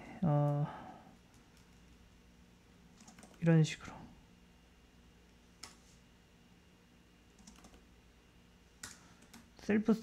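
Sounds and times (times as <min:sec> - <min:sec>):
computer keyboard clicks: 0:03.0 - 0:03.4, 0:07.4 - 0:07.8, 0:08.8 - 0:09.5.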